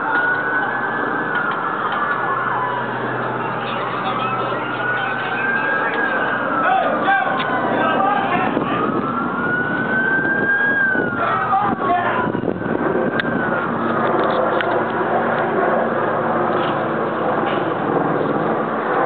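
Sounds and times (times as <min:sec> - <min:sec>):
police siren wailing: 0:00.0 - 0:19.0
street and traffic noise: 0:00.0 - 0:19.0.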